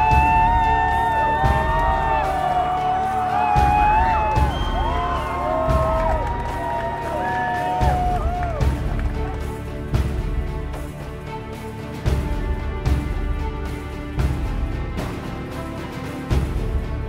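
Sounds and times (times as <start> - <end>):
background music with sliding melody: 0.0 - 17.0.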